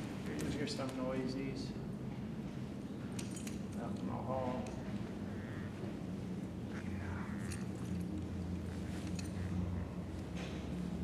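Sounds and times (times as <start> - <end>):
steady low hum: 0.0 - 11.0
metallic jingle: 3.2 - 4.6, 7.2 - 9.8.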